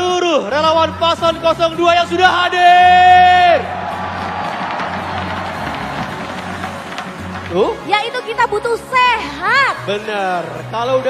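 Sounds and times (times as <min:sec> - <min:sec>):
music over sound system: 0:00.0 - 0:11.0
crowd noise: 0:01.4 - 0:11.0.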